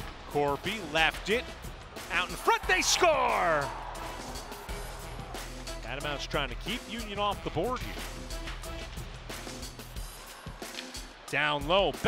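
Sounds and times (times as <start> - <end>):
arena crowd noise: 0.0 - 7.8, 10.0 - 12.0.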